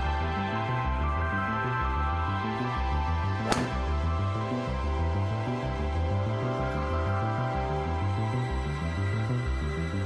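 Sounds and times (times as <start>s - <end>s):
background music with bass: 0.0s - 10.0s
golf ball struck off tee: 3.4s - 4.1s.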